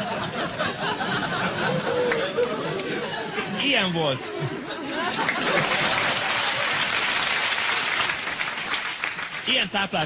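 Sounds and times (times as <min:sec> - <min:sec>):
audience applauding: 0:01.8 - 0:03.0, 0:05.0 - 0:10.0.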